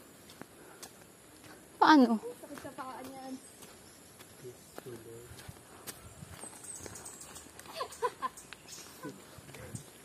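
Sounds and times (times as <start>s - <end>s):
footsteps on a stony path: 0.0s - 10.0s.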